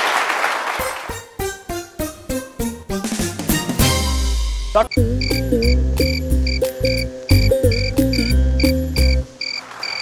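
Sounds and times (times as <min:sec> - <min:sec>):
cricket chirps: 0:05.0 - 0:10.0.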